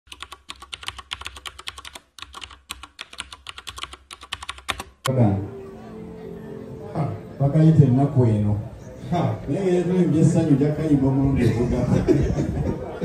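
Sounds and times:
keyboard typing clicks: 0:00.1 - 0:05.1.

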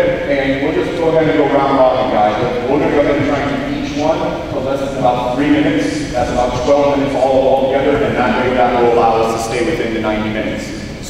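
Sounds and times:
man talking into microphone: 0:00.0 - 0:11.0.

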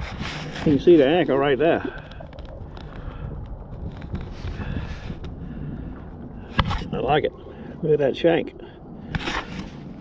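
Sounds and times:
wind on microphone: 0:00.0 - 0:10.0
faint clicks: 0:01.8 - 0:05.4.

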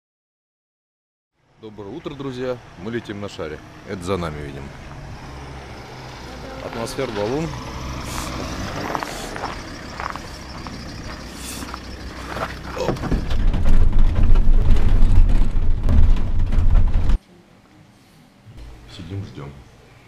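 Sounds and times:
deep engine and road rumble: 0:01.4 - 0:17.2
van engine running: 0:01.5 - 0:17.2.

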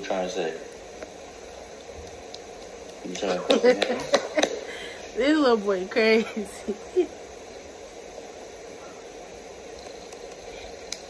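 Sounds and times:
low room noise hiss: 0:00.0 - 0:11.0.

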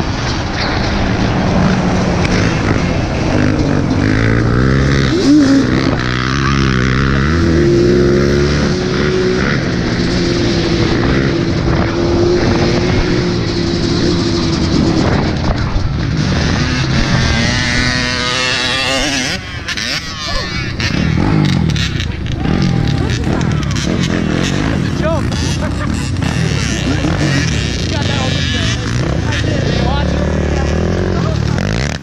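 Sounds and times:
off-road vehicle engine revving: 0:00.0 - 0:32.0.

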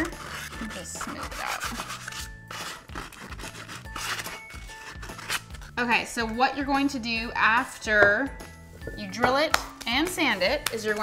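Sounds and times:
sandpaper rubbing on wood: 0:00.0 - 0:05.5
background music: 0:00.0 - 0:11.0.

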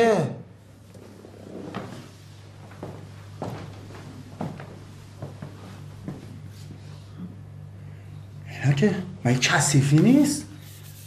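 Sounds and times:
low room hum: 0:00.0 - 0:11.0
person getting up and moving: 0:00.8 - 0:06.8.

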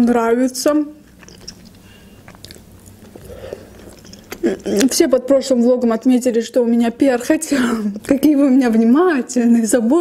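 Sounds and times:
woman chewing food: 0:01.1 - 0:04.9.

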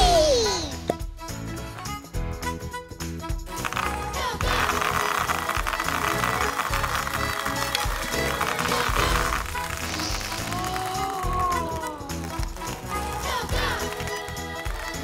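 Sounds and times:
background music with steady beat: 0:00.0 - 0:15.0
plastic beads pouring into tray: 0:03.6 - 0:13.0.

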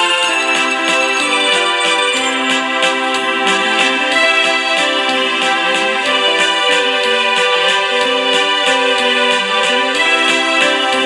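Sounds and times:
electronic keyboard organ chords: 0:00.0 - 0:11.0
steady beat: 0:00.0 - 0:11.0.

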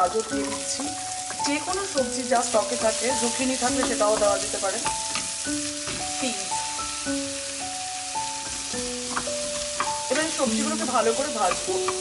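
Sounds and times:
soft background music: 0:00.0 - 0:12.0
vegetables sizzling in oil: 0:00.0 - 0:12.0
wooden spatula stirring in pan: 0:00.1 - 0:12.0.

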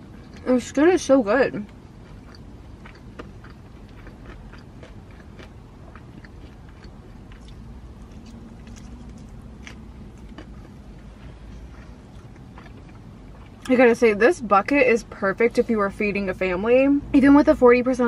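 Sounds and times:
low steady hum: 0:00.0 - 0:18.0
chewing and biting chicken: 0:01.7 - 0:13.7.

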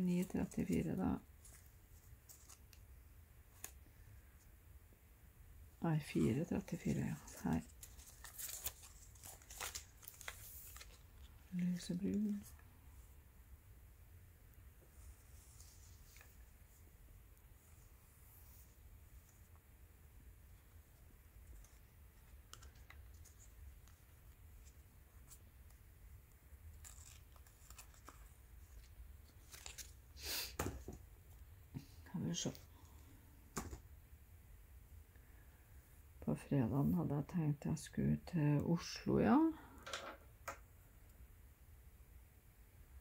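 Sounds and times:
faint rustling of threads: 0:00.0 - 0:04.8, 0:05.8 - 0:13.3, 0:14.5 - 0:33.9
low steady hum: 0:00.0 - 0:30.2.

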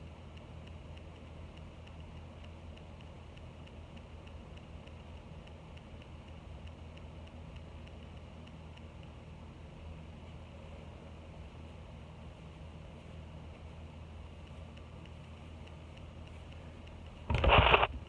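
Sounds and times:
electric fan humming and ticking: 0:00.0 - 0:18.0.

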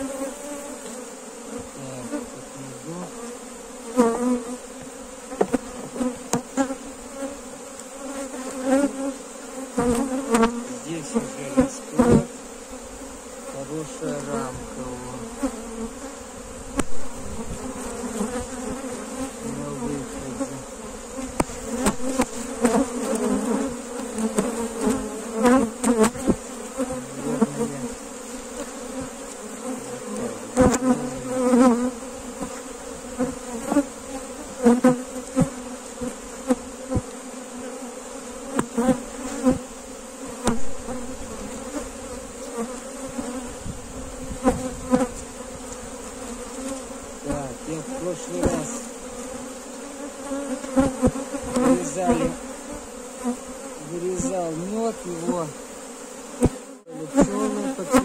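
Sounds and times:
bees flying past: 0:00.0 - 0:58.0
honeybees buzzing: 0:00.0 - 0:58.0
wooden hive frames knocking: 0:04.7 - 0:06.7, 0:21.2 - 0:27.5, 0:38.5 - 0:39.6, 0:48.2 - 0:48.9, 0:56.3 - 0:58.0.

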